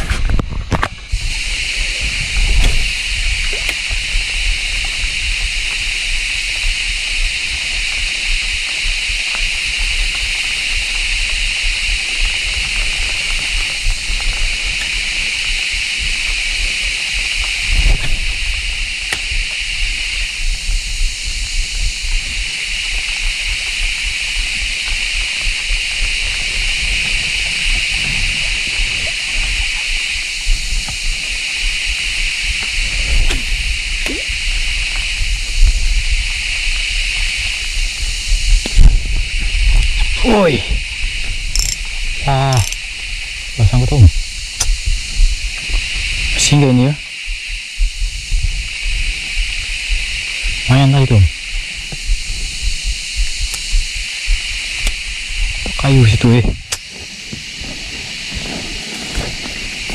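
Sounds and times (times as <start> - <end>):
high insect chorus: 0.0 - 59.9.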